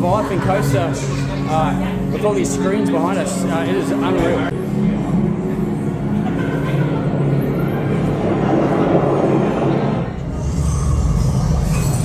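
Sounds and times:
roller coaster rushing rumble: 7.2 - 12.0.

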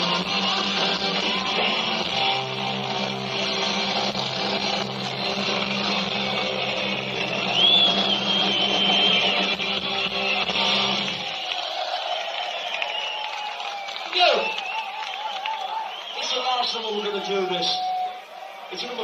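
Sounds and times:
live rock band chord: 0.0 - 11.1
high whistling tone: 7.1 - 9.8, 14.2 - 18.8.

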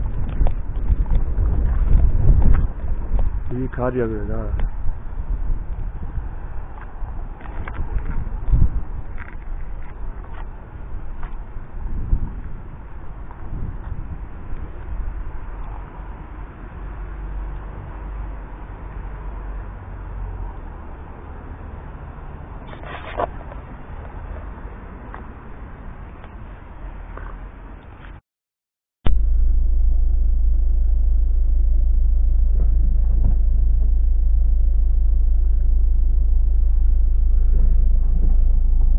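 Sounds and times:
bumps and clicks: 29.1 - 38.9
low rumble and hiss: 29.1 - 38.9
short sharp sound: 29.1 - 38.9.

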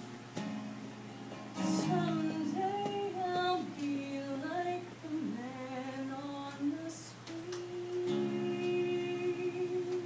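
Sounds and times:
acoustic guitar: 0.0 - 10.0
woman singing: 1.6 - 10.0.

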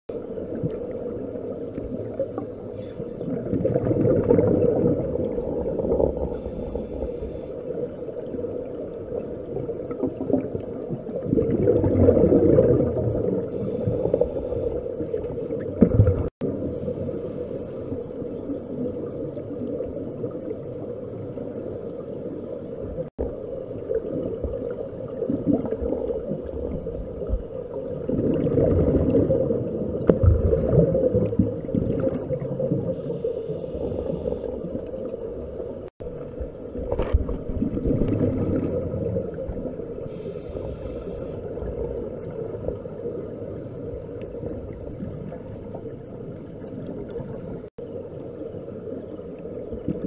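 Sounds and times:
low underwater hum: 0.1 - 50.0
bubbling of exhaled air: 0.2 - 20.9, 23.0 - 36.0, 36.9 - 47.7
short high hisses: 6.4 - 7.5, 40.1 - 41.4.

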